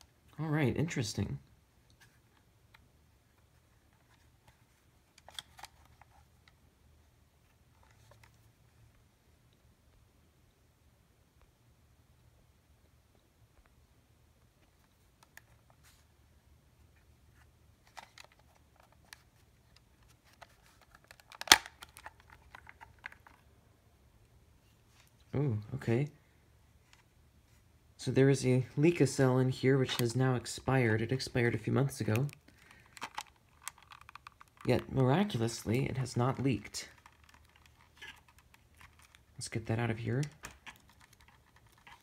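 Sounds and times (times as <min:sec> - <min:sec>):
plastic case clicking in hands: 0:05.1 - 0:06.2, 0:17.8 - 0:23.4, 0:32.1 - 0:34.9, 0:36.3 - 0:39.3, 0:40.2 - 0:42.0
sharp plastic snap: 0:21.2 - 0:22.1.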